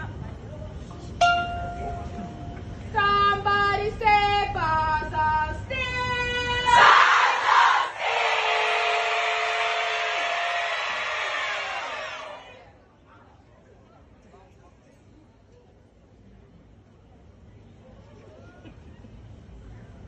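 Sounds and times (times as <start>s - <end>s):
crowd cheering and screaming: 6.8s - 12.5s.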